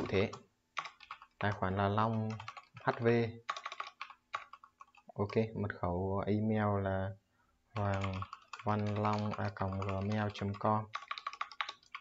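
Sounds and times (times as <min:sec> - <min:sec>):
typing on computer keyboard: 0:00.0 - 0:05.4, 0:07.8 - 0:12.0.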